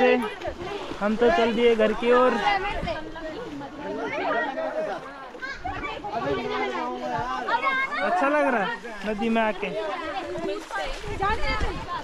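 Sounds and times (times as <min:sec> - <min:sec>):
voices talking and chattering: 0:00.0 - 0:12.0.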